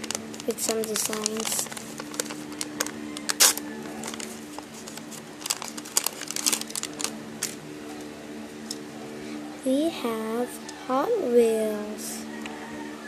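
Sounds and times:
paper crinkling: 0:00.0 - 0:07.6.

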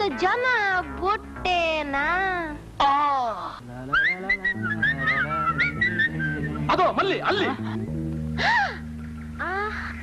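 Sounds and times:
voices: 0:01.8 - 0:07.8
steady bass line: 0:03.6 - 0:09.7
whistled tune: 0:03.9 - 0:06.7.

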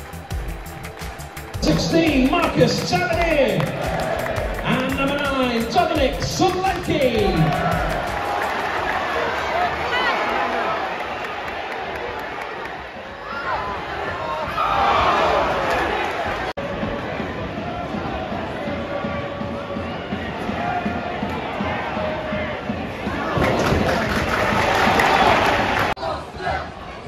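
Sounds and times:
stadium crowd shouting: 0:01.0 - 0:27.0.

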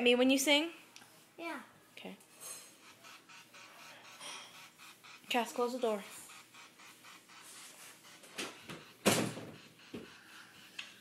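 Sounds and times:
door shutting thump: 0:08.4 - 0:09.6.

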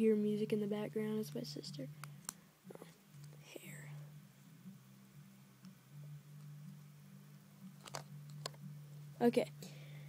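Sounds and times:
low steady hum: 0:00.0 - 0:10.0
faint whispering: 0:02.7 - 0:04.1.

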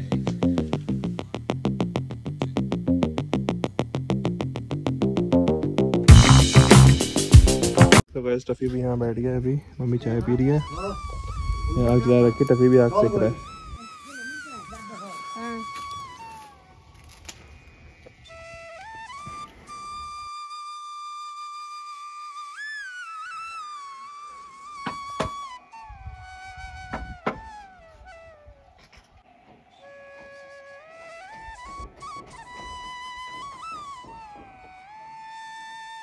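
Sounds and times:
slow flute melody: 0:05.2 - 0:08.0, 0:10.1 - 0:36.0.

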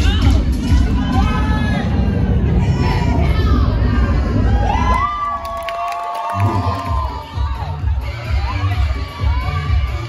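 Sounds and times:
dance music with heavy bass beat: 0:00.0 - 0:05.4, 0:06.3 - 0:10.0
audience cheering and whooping: 0:04.3 - 0:08.6.

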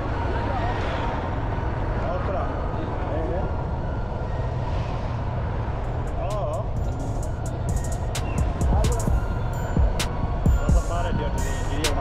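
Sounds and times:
traffic rumble: 0:00.0 - 0:12.0
people's voices: 0:06.1 - 0:12.0.

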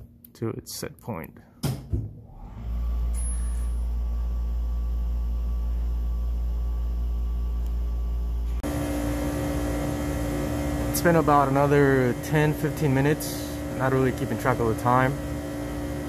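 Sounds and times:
deep machine hum: 0:02.2 - 0:16.0.

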